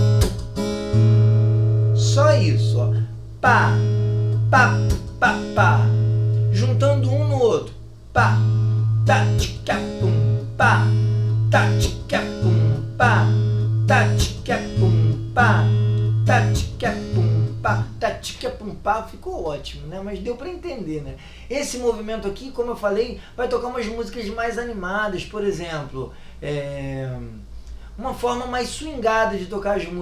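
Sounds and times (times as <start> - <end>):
fingers slapping guitar strings: 0.0 - 1.0, 4.3 - 5.6
fingerpicked acoustic guitar: 0.0 - 18.8.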